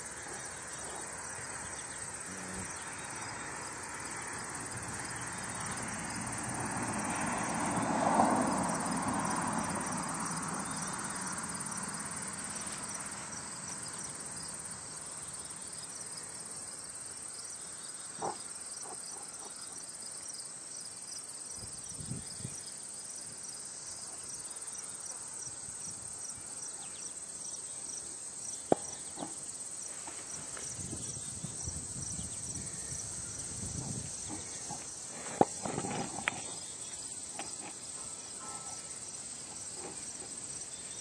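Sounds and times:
insect chorus trilling: 0.0s - 41.0s.

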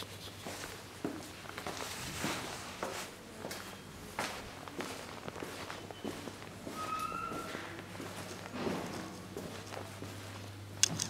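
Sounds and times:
footsteps across a room: 0.2s - 11.0s.

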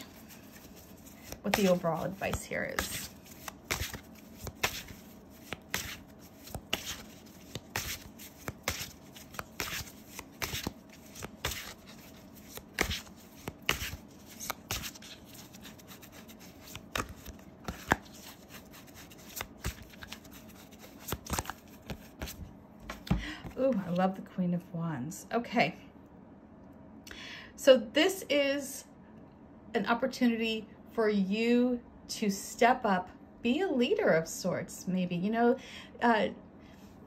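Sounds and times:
cards being shuffled: 0.0s - 24.0s.

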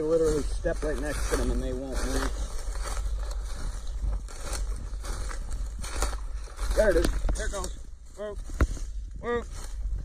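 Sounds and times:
footsteps crunching dry leaves: 0.0s - 10.0s
steady low rumble: 0.0s - 10.0s.

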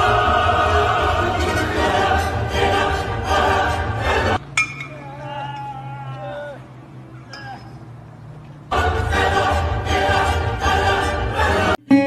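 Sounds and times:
choral music with operatic singing: 0.0s - 4.6s, 8.6s - 11.9s.

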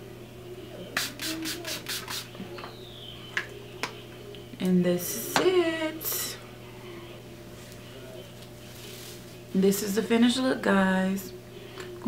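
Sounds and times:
spray bottle misting: 1.0s - 2.3s.

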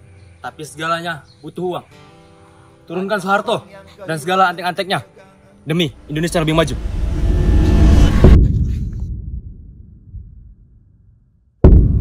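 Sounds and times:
deep rumble: 5.9s - 12.0s.

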